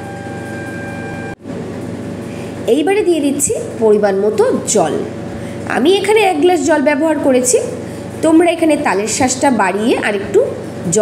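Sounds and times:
faint high whine: 0.0 - 1.4
background hum and hiss: 0.0 - 11.0.

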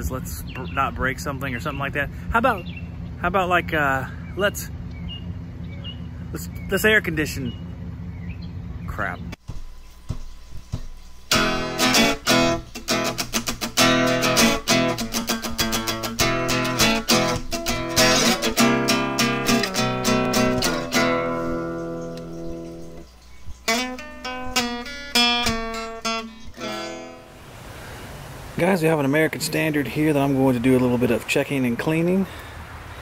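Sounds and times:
acoustic guitar strumming: 9.4 - 27.4.

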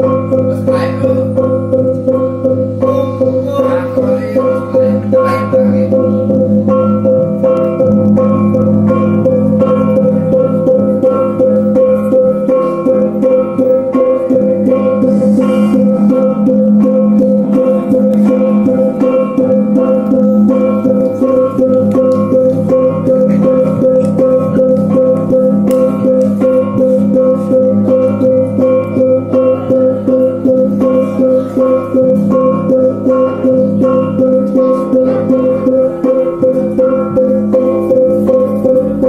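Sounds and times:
gamelan metallophones playing: 0.0 - 39.0.

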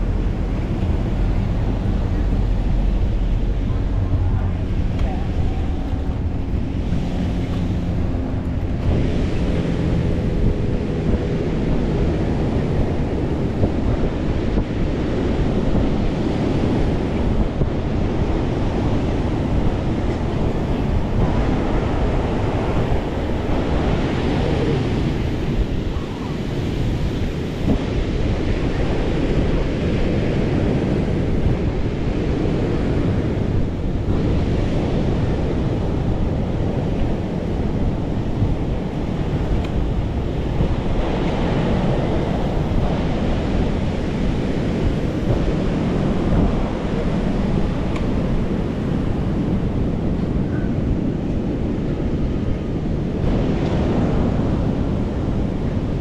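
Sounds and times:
ocean surf breaking: 0.0 - 56.0
wind rushing on microphone: 0.0 - 56.0.

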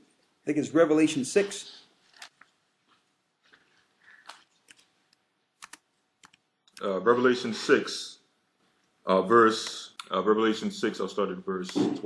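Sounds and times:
faint irregular clicks: 2.0 - 6.9.

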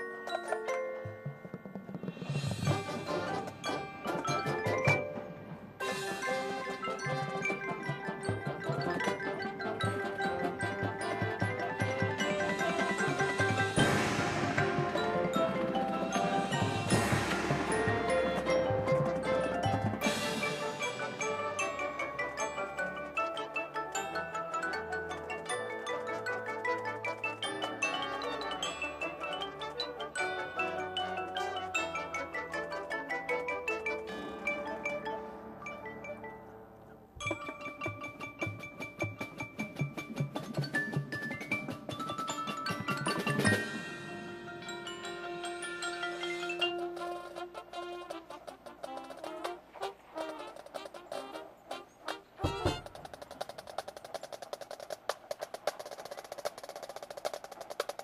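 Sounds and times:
marching band playing: 0.0 - 36.4, 37.2 - 58.0
mallet percussion: 0.0 - 36.6, 37.2 - 47.8
marimba and glockenspiel notes: 0.0 - 47.6
drum strikes: 1.0 - 6.7, 10.9 - 21.8, 37.2 - 45.0, 52.4 - 58.0.

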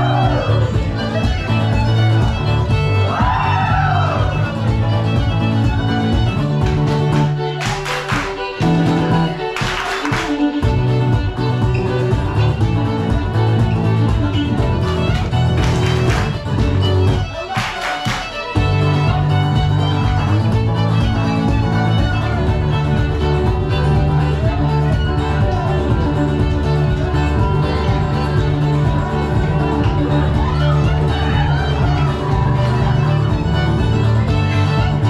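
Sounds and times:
fiddle tune: 0.0 - 35.0
guitar accompaniment: 0.0 - 35.0.

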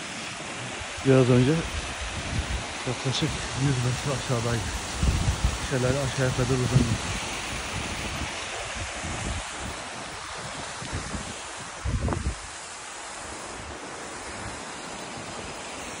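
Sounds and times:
waterfall rushing: 0.0 - 16.0
wind buffeting microphone: 0.8 - 12.6.

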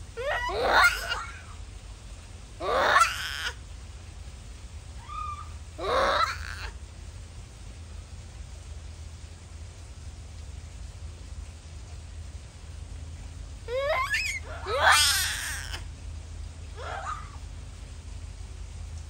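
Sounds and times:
low background rumble: 0.0 - 19.0
monkey wavering cries: 0.1 - 1.6, 2.6 - 3.6, 5.0 - 6.8, 13.7 - 15.9, 16.8 - 17.4.

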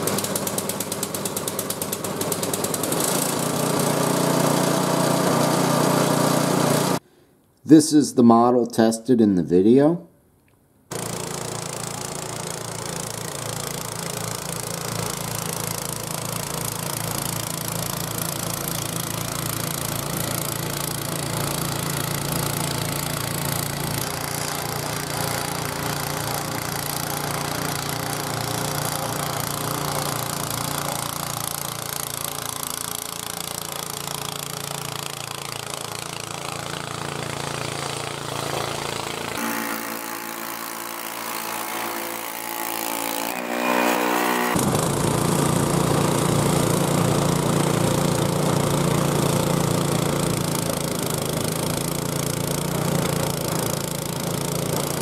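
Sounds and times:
snowblower engine running: 0.0 - 7.0, 10.9 - 55.0
auger throwing snow: 43.4 - 55.0.

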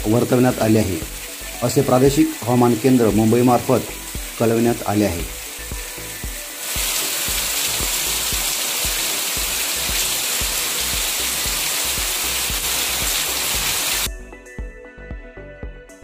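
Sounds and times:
heavy rain pouring: 0.0 - 14.1
music with a steady beat: 3.9 - 4.4, 5.2 - 16.0.

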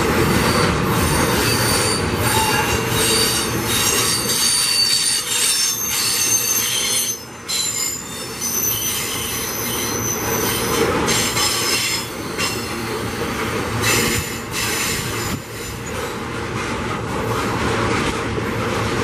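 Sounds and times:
steel wheels squealing on rails: 0.0 - 16.3
rumble of wheels on track: 0.0 - 19.0.

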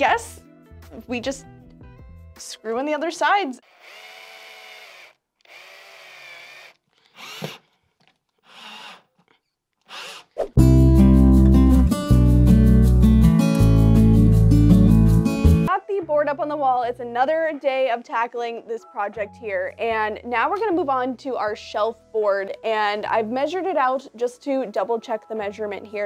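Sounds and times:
cordless drill driving screws: 3.6 - 7.8, 8.4 - 9.1, 9.9 - 10.3.

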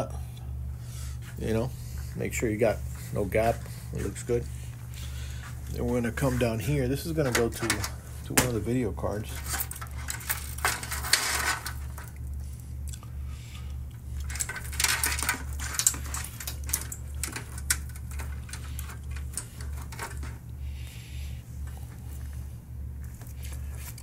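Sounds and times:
steady low hum: 0.0 - 24.0
cables rustling with clicks: 1.2 - 24.0.

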